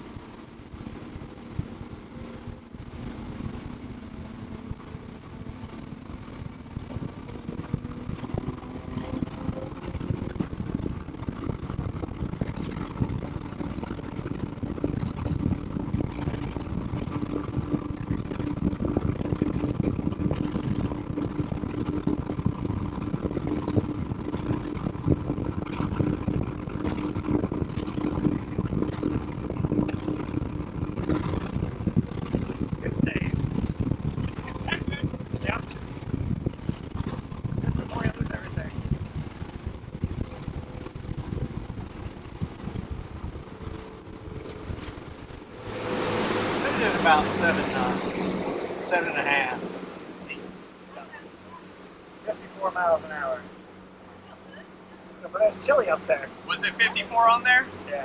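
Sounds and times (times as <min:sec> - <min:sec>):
outboard engines running hard: 0:00.0 - 0:58.0
wind and water rushing: 0:00.0 - 0:58.0.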